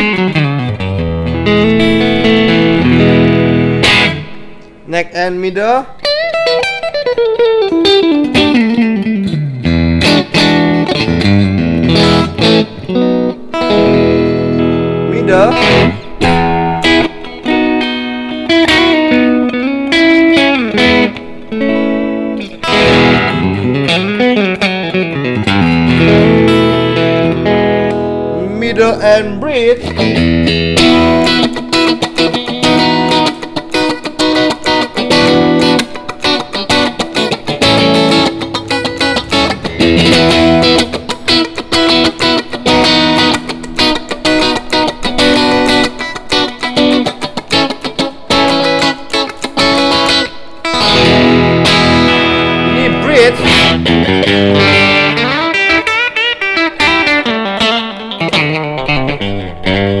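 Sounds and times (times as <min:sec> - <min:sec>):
overdriven electric guitar playing: 0:00.0 - 1:00.0.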